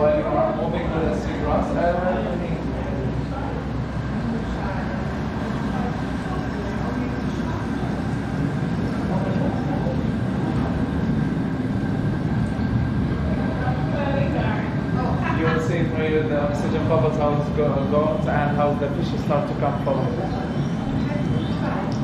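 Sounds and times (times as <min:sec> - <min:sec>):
faint voices: 0:00.0 - 0:22.0
low room rumble: 0:00.0 - 0:22.0.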